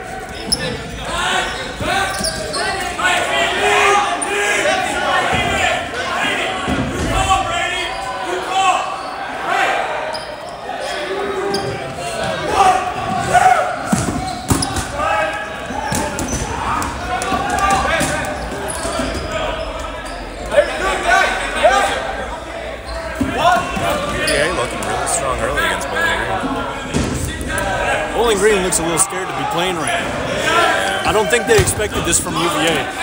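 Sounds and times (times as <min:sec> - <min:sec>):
people talking and calling out: 0:00.0 - 0:33.0.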